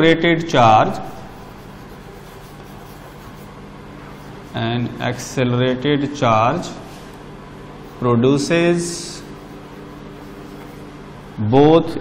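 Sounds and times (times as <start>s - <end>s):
low steady hum: 0.0s - 12.0s
chalk scratching on chalkboard: 0.8s - 5.0s, 7.8s - 11.1s.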